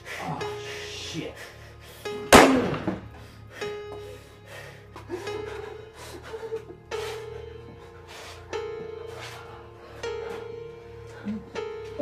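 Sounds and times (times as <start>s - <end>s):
background music with held tone: 0.0s - 12.0s
handgun shot: 2.3s - 3.0s.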